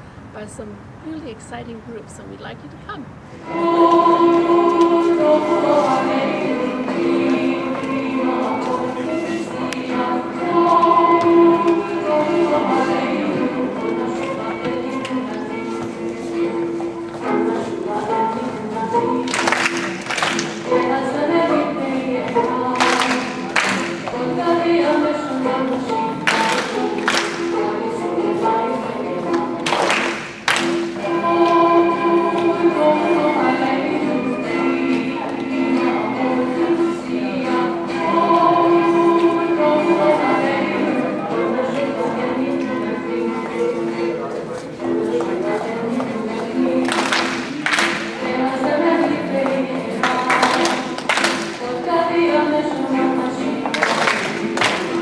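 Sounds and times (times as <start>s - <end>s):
folk dance music: 0.0s - 55.0s
choir singing long notes: 3.3s - 55.0s.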